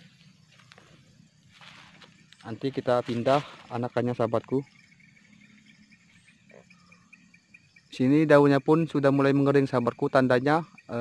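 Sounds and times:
insects chirping faintly: 0.0 - 11.0.

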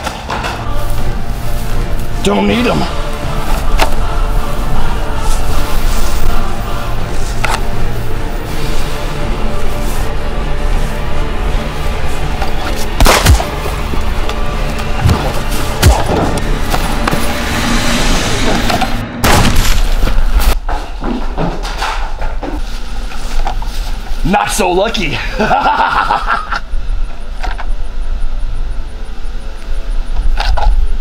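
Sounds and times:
film soundtrack music: 0.0 - 20.6
sudden loud booms: 17.8 - 20.5.

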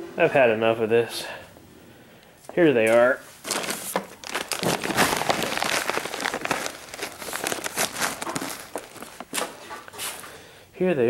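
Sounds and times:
plastic bag crinkling: 2.9 - 10.4.

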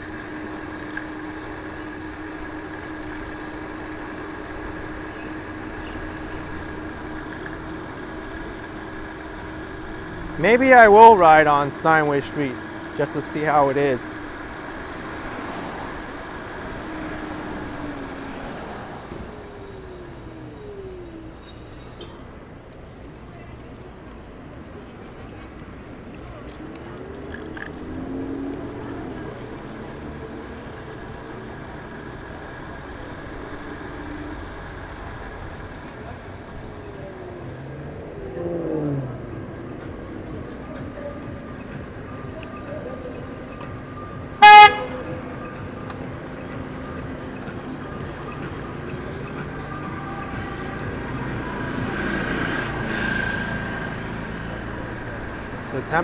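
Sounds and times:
vehicles passing: 0.0 - 56.0
loud horn toot: 44.4 - 45.2.

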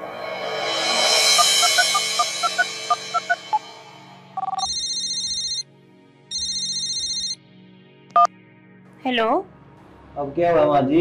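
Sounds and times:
two-note electronic beep: 1.3 - 3.8, 4.4 - 5.1
phone ringing: 1.4 - 3.3, 4.4 - 5.6, 6.3 - 7.4.

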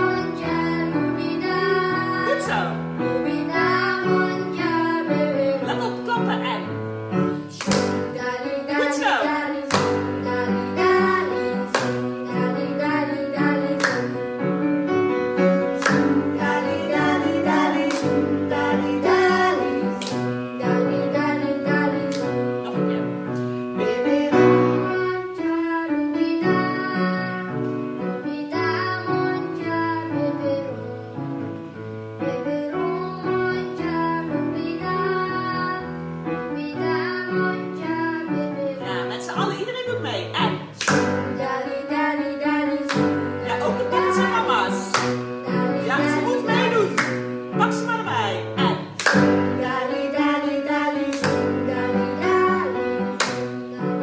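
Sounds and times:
children and woman singing: 0.0 - 6.8, 7.4 - 14.4, 15.8 - 22.5, 23.8 - 27.5, 32.2 - 54.0
piano accompaniment: 0.0 - 54.0
hand clap: 7.6 - 8.2, 9.7 - 10.1, 11.7 - 12.0, 13.7 - 14.2, 15.8 - 16.2, 17.8 - 18.2, 20.0 - 20.3, 22.1 - 22.4, 40.8 - 41.3, 42.8 - 43.2, 44.3 - 45.3, 46.3 - 47.3, 48.8 - 49.5, 51.1 - 51.6, 53.1 - 53.5.

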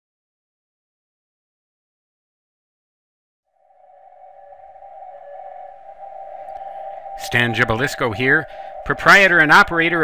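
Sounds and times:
steady electronic tone: 3.5 - 10.0.

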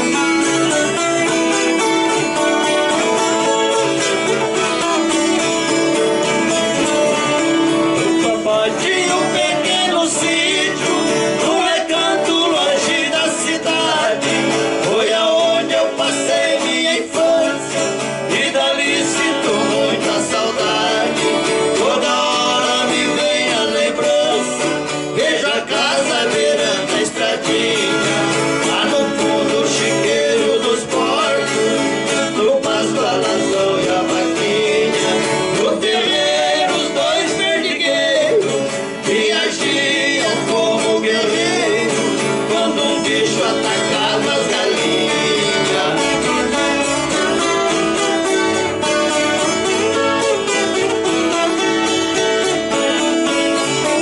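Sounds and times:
acoustic guitar strummed: 0.0 - 54.0
folk guitar strumming: 0.0 - 54.0
two men singing: 0.0 - 54.0.

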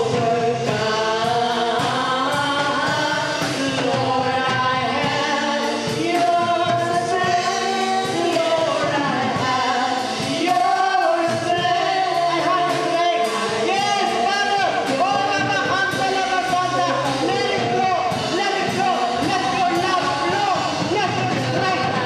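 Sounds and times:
group singing worship song: 0.0 - 22.0.

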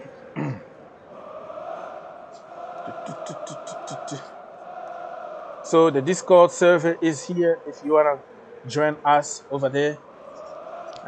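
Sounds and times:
man clearing throat: 0.4 - 0.7.

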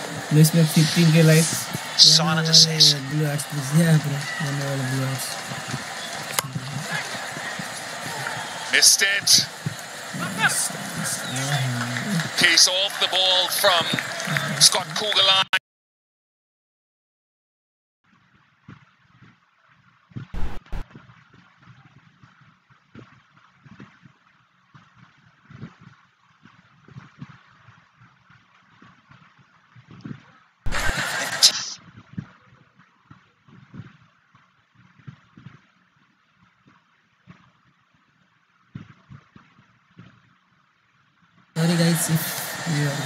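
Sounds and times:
faint outdoor ambience: 0.0 - 15.5, 38.4 - 43.0
loud noise bursts: 20.4 - 20.8, 30.7 - 31.8.

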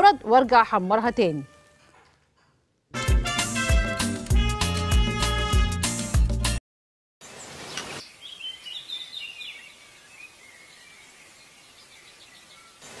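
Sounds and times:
outdoor hiss: 7.2 - 13.0
birds chirping: 7.4 - 13.0.

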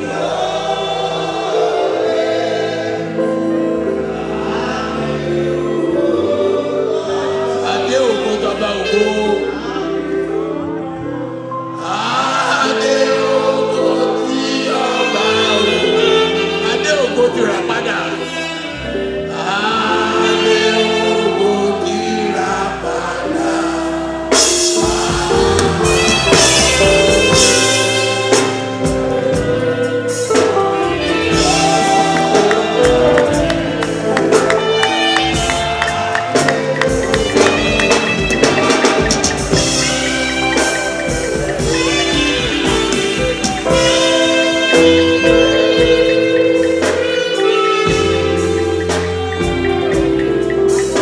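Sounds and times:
gospel choir singing: 0.0 - 51.0
low accompaniment: 0.0 - 51.0
long held notes: 13.4 - 51.0.

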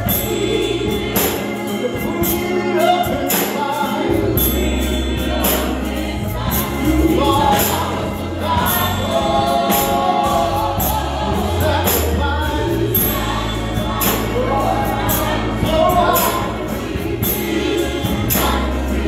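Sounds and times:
bass and percussion accompaniment: 0.0 - 19.0
man singing gospel: 0.0 - 19.0.

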